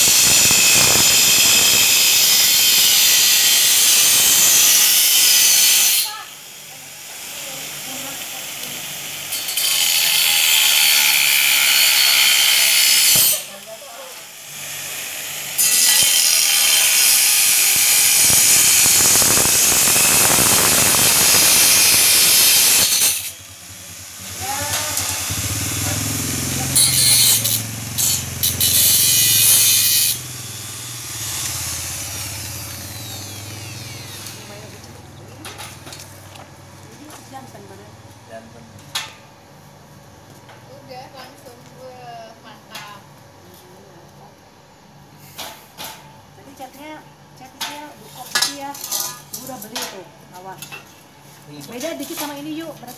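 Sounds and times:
angle grinder on metal: 0:00.0 - 0:06.4, 0:07.2 - 0:13.6, 0:14.3 - 0:35.9.

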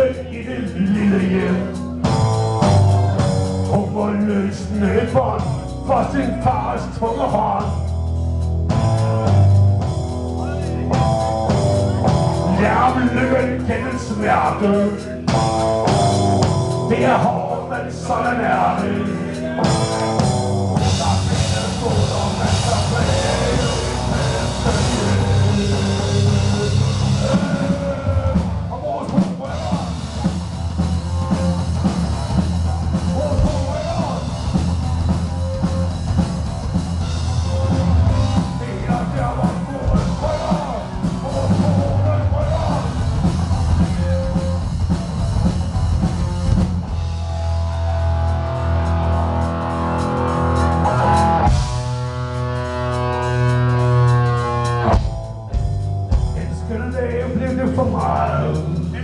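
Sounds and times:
live rock band playing: 0:00.0 - 0:59.0.

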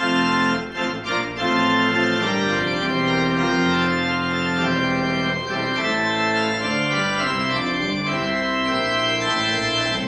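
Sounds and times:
organ playing sustained chords: 0:00.0 - 0:10.0.

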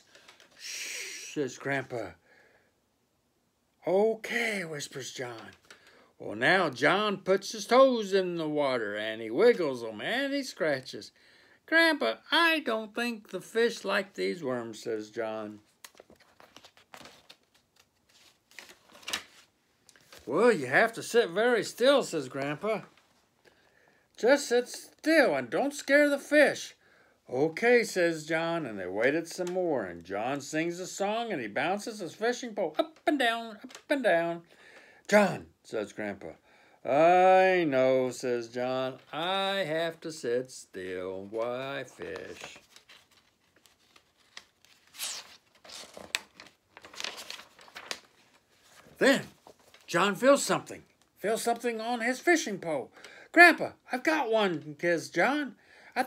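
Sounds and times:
paper page rustling: 0:15.5 - 0:23.2, 0:40.8 - 0:51.6
crisp page flap: 0:15.6 - 0:20.3, 0:41.2 - 0:49.9.

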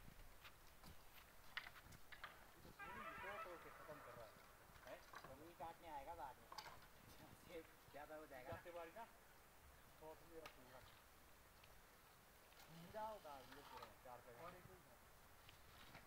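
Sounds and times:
distant voices calling and talking: 0:02.2 - 0:15.1.

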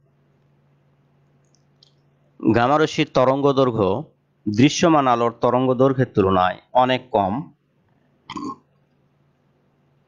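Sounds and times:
faint low hum: 0:00.0 - 0:10.0
man speaking: 0:02.4 - 0:07.6
man clearing throat: 0:08.3 - 0:08.7.

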